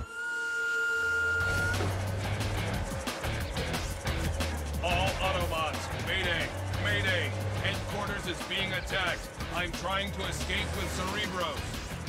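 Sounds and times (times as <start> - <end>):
high electronic tone: 0.0 - 4.1
deep engine rumble: 1.4 - 12.0.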